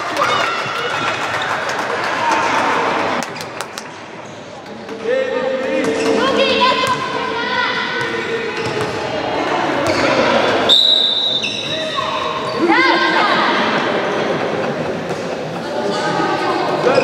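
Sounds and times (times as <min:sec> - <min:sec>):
referee's whistle blast: 0:10.7 - 0:11.7.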